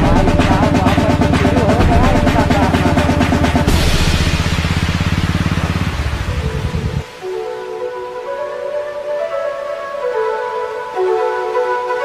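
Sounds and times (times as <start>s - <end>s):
music with pounding drum roll: 0.0s - 7.3s.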